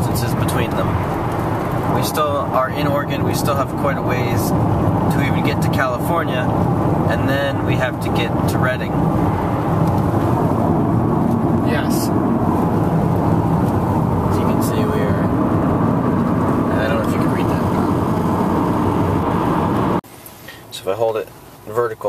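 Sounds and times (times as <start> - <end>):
car road and engine noise: 0.0 - 22.0.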